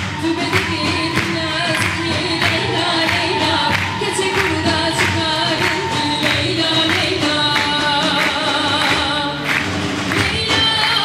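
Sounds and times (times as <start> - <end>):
frame drums beating: 0.0 - 11.0
woman singing into microphone: 0.0 - 11.0.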